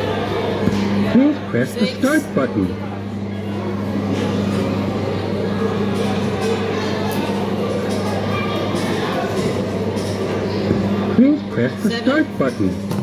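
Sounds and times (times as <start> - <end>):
faint chatter: 0.0 - 13.0
low electrical hum: 0.0 - 13.0.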